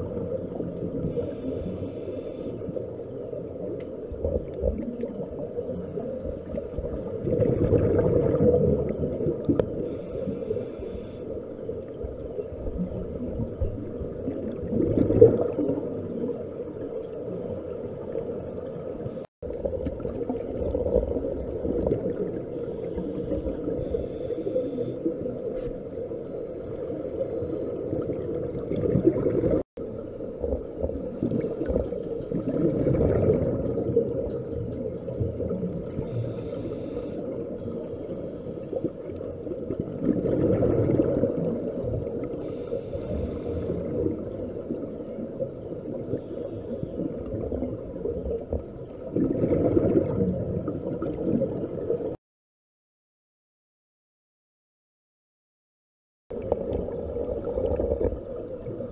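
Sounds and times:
regulator breathing underwater: 0:01.0 - 0:02.7, 0:09.8 - 0:11.5, 0:22.5 - 0:25.1, 0:36.0 - 0:37.5, 0:42.3 - 0:44.0, 0:44.9 - 0:47.2
bubbles gurgling: 0:04.0 - 0:10.0, 0:11.8 - 0:24.0, 0:26.6 - 0:36.4, 0:38.7 - 0:46.3, 0:47.0 - 0:52.2, 0:56.3 - 0:58.9.

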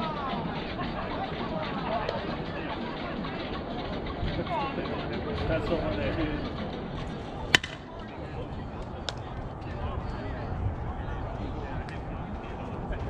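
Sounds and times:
bat cracking ball: 0:07.5 - 0:08.0.

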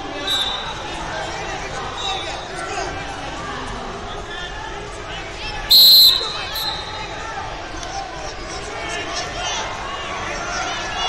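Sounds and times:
referee's whistle blast: 0:00.0 - 0:00.9, 0:05.7 - 0:07.1
many people talking: 0:00.0 - 0:11.0.

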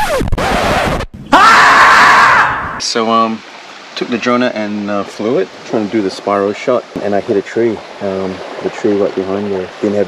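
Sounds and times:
person crying out: 0:01.3 - 0:02.8.

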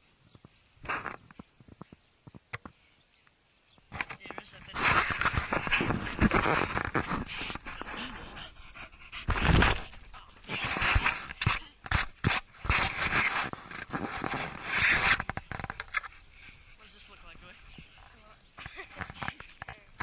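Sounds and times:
dog sniffing and panting: 0:04.8 - 0:13.6.

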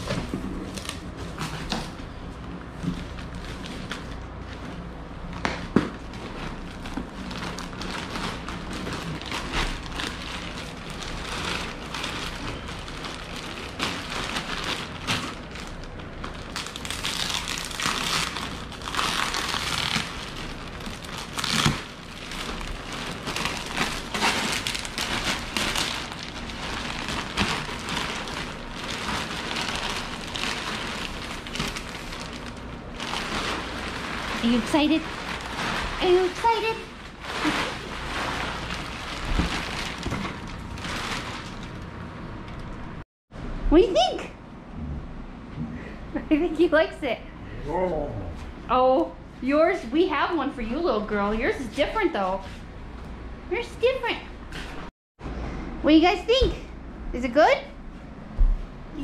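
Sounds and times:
plastic wrapping crinkling: 0:02.6 - 0:05.4, 0:06.0 - 0:42.0.

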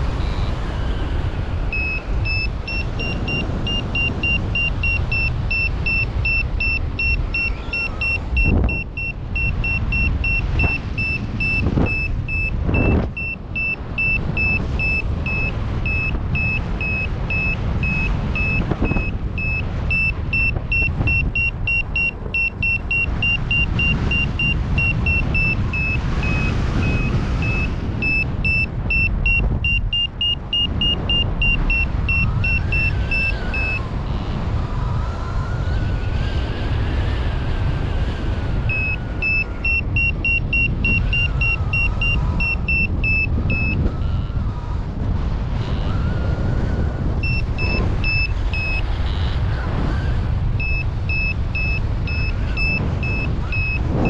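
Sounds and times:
wind on microphone: 0:00.0 - 0:54.0
variometer high beeps: 0:01.6 - 0:33.9, 0:38.4 - 0:44.3, 0:47.1 - 0:49.6, 0:50.4 - 0:54.0.

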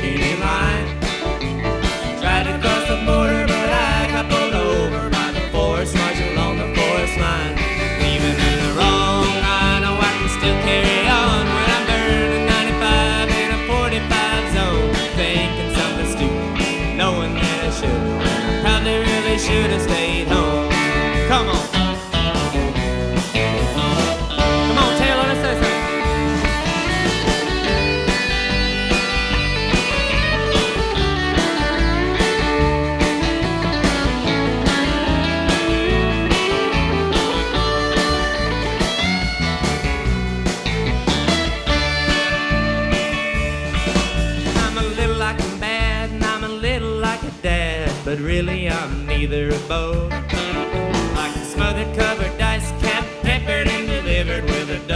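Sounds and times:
electric guitar lead: 0:00.0 - 0:47.3, 0:48.3 - 0:54.9
bass guitar: 0:00.0 - 0:54.9
drum beat: 0:00.0 - 0:54.9.

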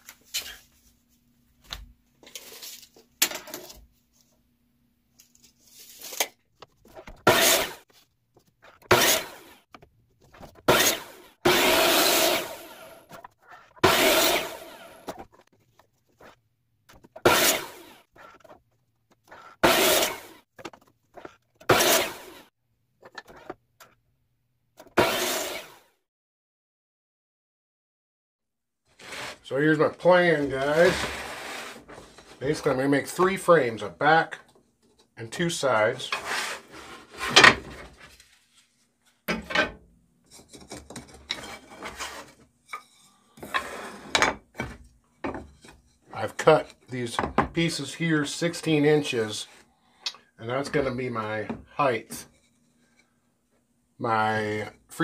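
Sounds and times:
saw blade cutting wood: 0:07.2 - 0:07.8, 0:08.8 - 0:09.6, 0:10.6 - 0:15.2, 0:17.2 - 0:18.6, 0:19.3 - 0:20.4, 0:21.2 - 0:22.5, 0:24.8 - 0:25.9, 0:36.1 - 0:37.6
miter saw spinning: 0:10.7 - 0:13.1, 0:13.8 - 0:15.1
wooden strips rubbing on workbench: 0:29.0 - 0:29.4, 0:30.4 - 0:32.4, 0:36.1 - 0:38.2, 0:41.4 - 0:42.5, 0:43.4 - 0:45.8.

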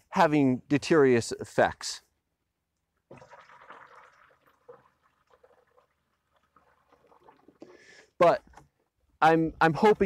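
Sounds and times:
water pouring onto soil: 0:03.1 - 0:07.8.

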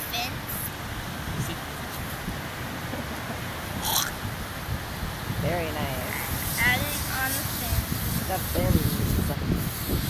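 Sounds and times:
wind and surf rumble: 0:00.0 - 0:10.0.

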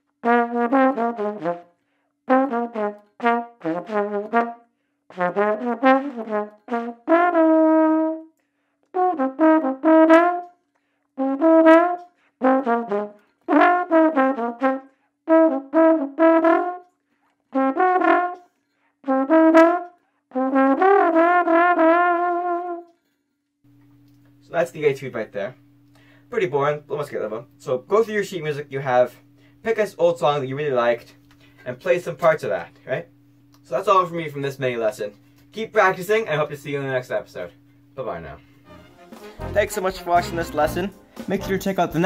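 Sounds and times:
trombone solo: 0:00.2 - 0:01.7, 0:02.3 - 0:08.3, 0:08.9 - 0:10.5, 0:11.2 - 0:16.9, 0:17.5 - 0:18.4, 0:19.0 - 0:22.9, 0:38.6 - 0:42.0.

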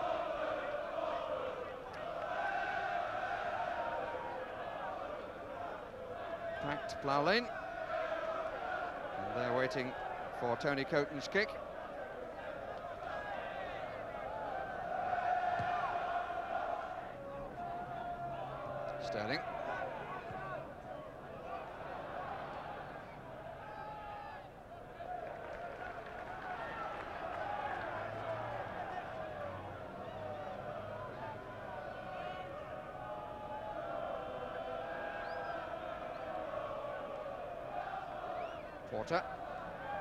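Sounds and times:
stadium crowd shouting: 0:00.0 - 0:40.0.

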